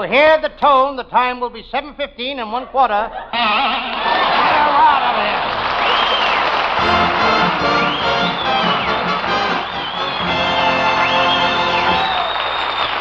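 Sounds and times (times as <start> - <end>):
audience laughing: 3.1 - 12.3
audience applauding: 3.8 - 13.0
orchestra playing: 6.8 - 12.2.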